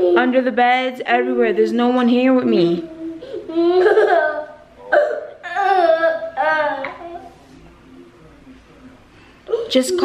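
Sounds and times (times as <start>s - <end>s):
child stifled giggling: 3.2s - 7.4s.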